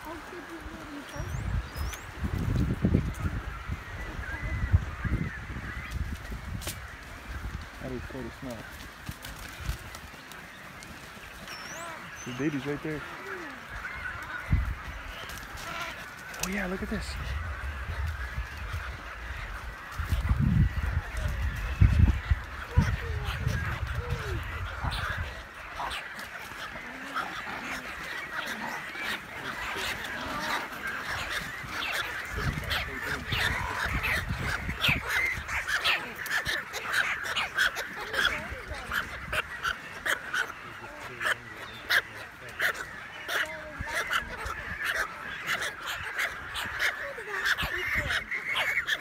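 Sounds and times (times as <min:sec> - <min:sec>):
colony birds honking calls: 0:00.0 - 0:49.0.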